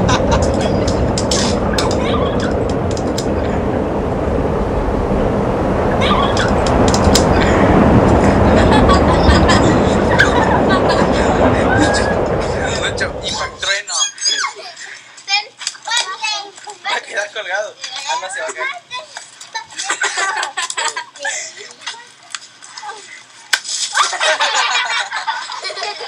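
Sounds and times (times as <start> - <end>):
children talking and calling out: 0.0 - 4.0, 5.8 - 17.1, 17.8 - 24.2
low rumbling noise: 0.0 - 13.8.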